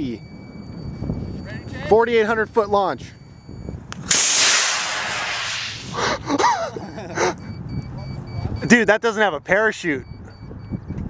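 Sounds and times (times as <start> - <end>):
rocket motor rushing hiss: 4.0 - 6.2.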